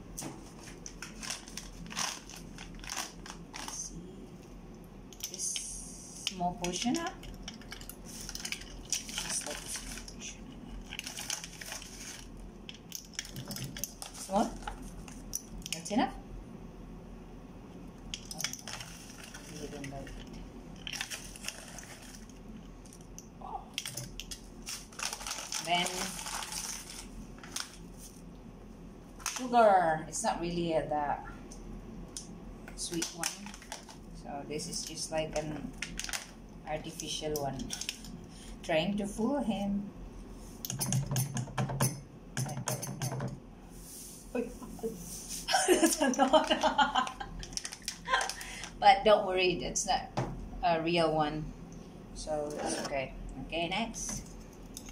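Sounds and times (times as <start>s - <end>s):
foil pouch crinkling: 0.6s - 3.8s, 10.8s - 12.4s, 18.5s - 22.4s, 24.1s - 28.2s, 33.0s - 34.0s, 35.8s - 36.4s, 46.3s - 48.8s.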